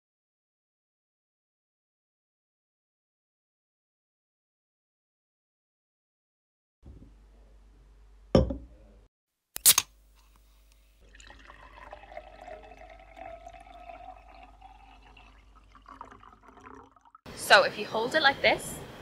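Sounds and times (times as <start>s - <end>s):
glass clinks: 8.4s - 8.6s
drink pouring into a glass: 11.0s - 17.2s.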